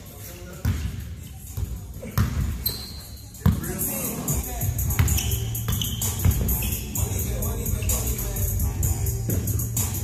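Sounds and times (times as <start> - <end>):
basketball bouncing on gym floor: 4.9 - 6.6.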